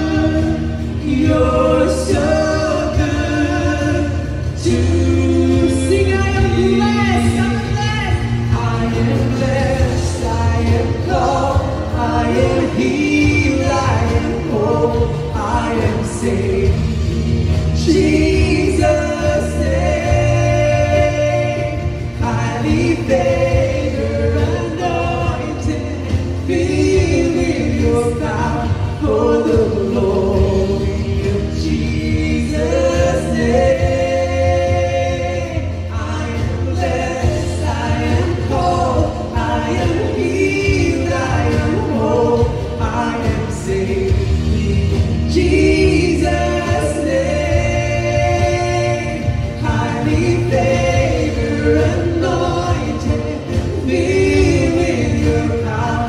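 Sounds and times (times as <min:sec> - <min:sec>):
acoustic guitar: 0:00.0 - 0:56.0
drums: 0:00.0 - 0:56.0
keyboard: 0:00.0 - 0:56.0.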